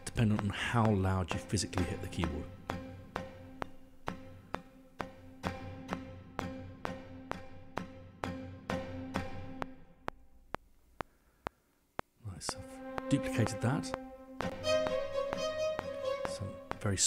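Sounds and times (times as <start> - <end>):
short woody string strikes: 12.4 - 17.0
strings holding a chord: 12.6 - 17.0.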